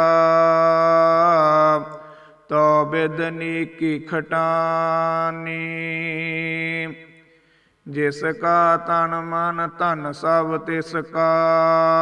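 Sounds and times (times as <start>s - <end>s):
man chanting: 0.0s - 7.2s, 7.8s - 12.0s.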